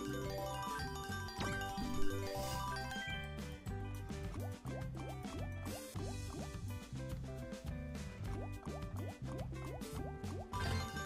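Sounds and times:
slot game music: 0.0 - 6.6, 8.4 - 11.0.

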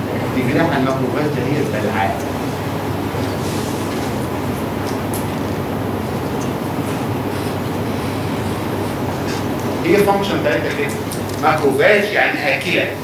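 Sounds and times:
low rumble of room ventilation: 0.0 - 13.0.

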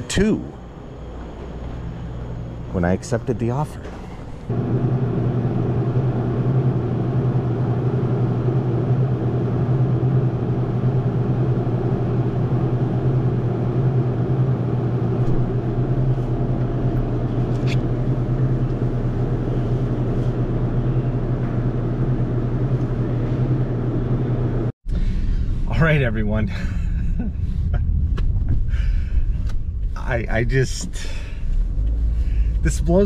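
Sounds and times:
deeper hum: 0.0 - 33.0
refrigerated case fan and motor hum: 0.0 - 33.0.

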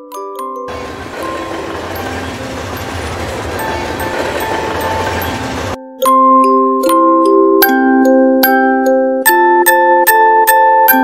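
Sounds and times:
train rumbling on track: 0.7 - 5.8.

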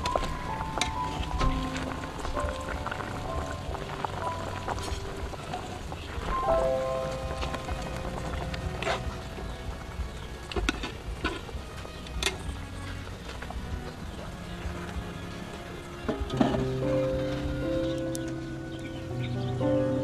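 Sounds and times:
food bubbling and sizzling in wok: 0.0 - 19.2
background music with held notes: 0.0 - 20.0.

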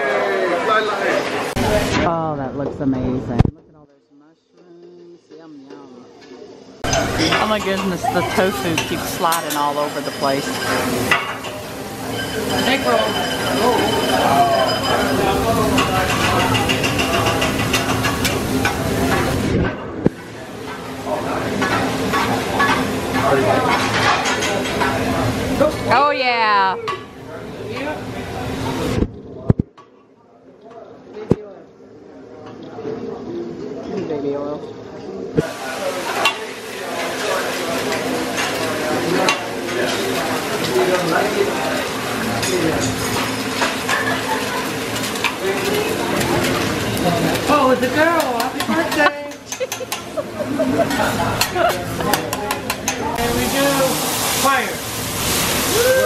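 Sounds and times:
restaurant chatter: 0.0 - 56.0
food sizzling on griddle: 6.4 - 28.9, 35.4 - 56.0.

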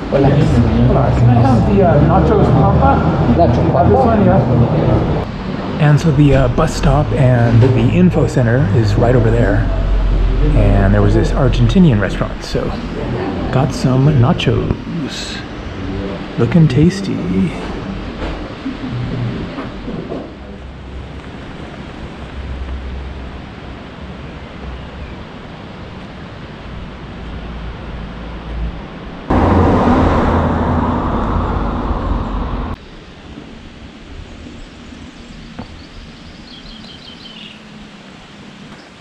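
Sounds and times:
loud rushing noise: 0.0 - 24.2, 29.0 - 34.1
low steady rumble: 3.2 - 25.0.

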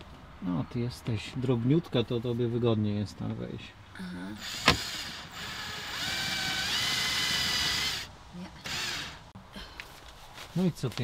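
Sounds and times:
cordless drill driving screw: 4.4 - 9.2.

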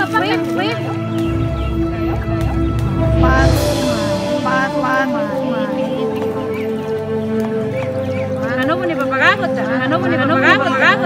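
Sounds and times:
gliding vocal-like sounds: 1.0 - 6.5
held music note: 1.1 - 6.5.

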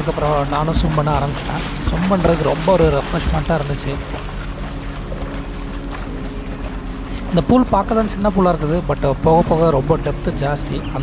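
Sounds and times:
water splashing from swimming strokes: 0.0 - 11.0.

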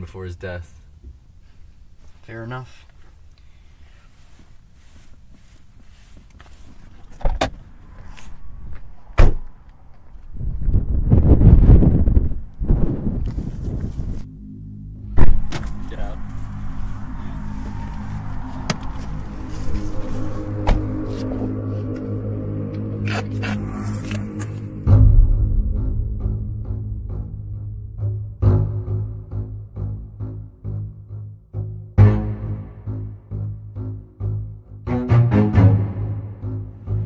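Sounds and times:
car door thump: 9.2 - 9.4, 20.6 - 21.0
low sustained music: 13.9 - 37.0
loud rush of noise: 15.0 - 25.0.

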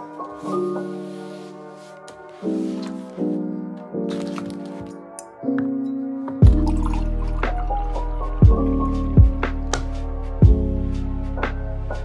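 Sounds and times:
instrumental music with beat: 0.2 - 12.0
water pouring into glass: 6.4 - 7.8.

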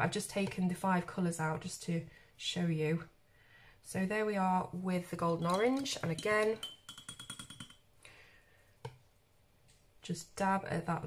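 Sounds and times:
brush handle clicking on glass: 5.3 - 7.8.

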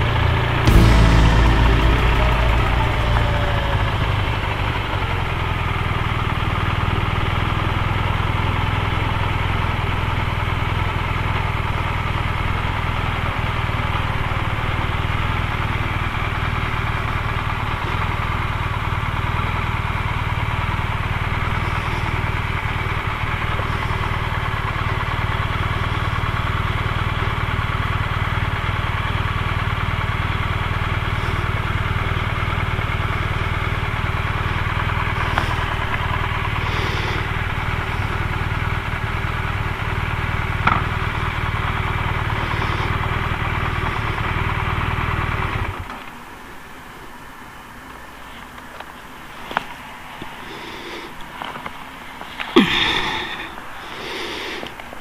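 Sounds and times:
motorcycle engine idling: 0.7 - 45.9.

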